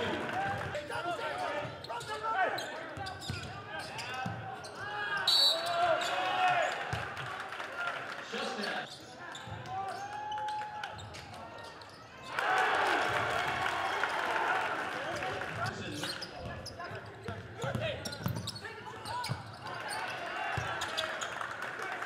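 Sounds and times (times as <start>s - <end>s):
sneakers squeaking: 0.9s - 6.2s, 8.8s - 12.3s, 15.6s - 21.4s
referee's whistle: 5.2s - 6.2s
players shouting: 12.2s - 16.0s.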